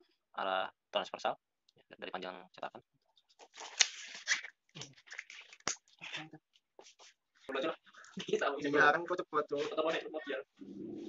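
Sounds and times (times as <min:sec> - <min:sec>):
fibres rustling and crackling: 0:03.2 - 0:08.7.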